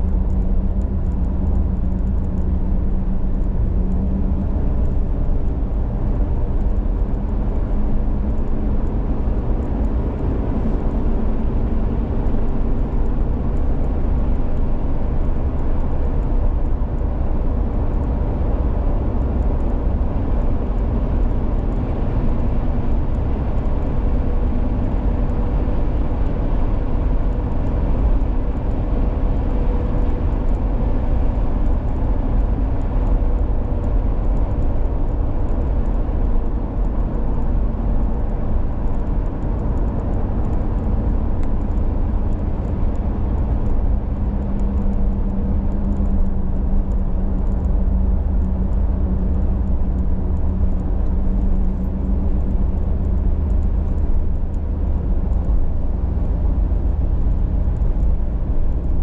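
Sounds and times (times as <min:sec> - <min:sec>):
car driving on road: 0:00.0 - 0:59.0.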